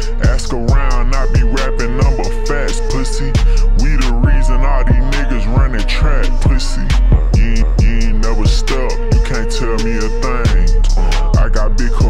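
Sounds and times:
deep sliding bass hits: 0.0 - 12.0
hi-hats: 0.0 - 12.0
slowed rapping: 0.0 - 12.0.

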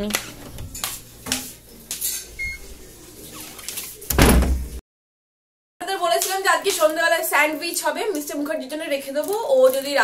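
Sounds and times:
door opening noise: 0.0 - 1.5, 3.8 - 4.8.

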